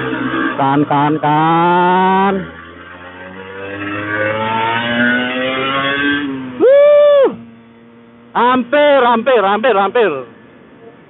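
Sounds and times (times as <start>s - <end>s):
two-stroke motorcycle engine accelerating: 0.0s - 10.6s
man exclaiming: 6.6s - 7.4s.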